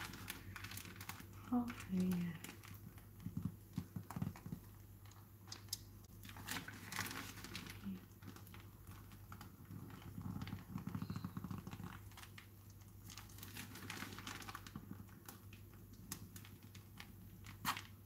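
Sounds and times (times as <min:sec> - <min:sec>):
low steady hum: 0:00.0 - 0:18.0
plastic piping bag crinkling: 0:00.0 - 0:18.0.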